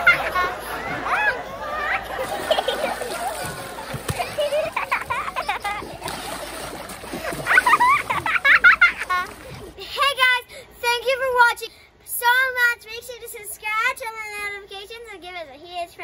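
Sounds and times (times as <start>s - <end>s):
pool water splashing: 0.0s - 9.8s
children's voices: 0.0s - 16.0s.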